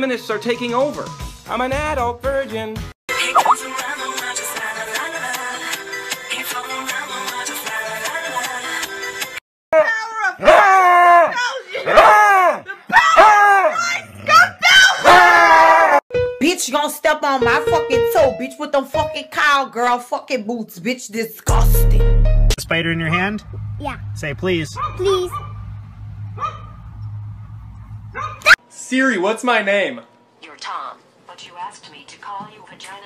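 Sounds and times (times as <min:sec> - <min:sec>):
dog howling: 0:09.8 - 0:16.0
steady low rumble: 0:21.5 - 0:28.4.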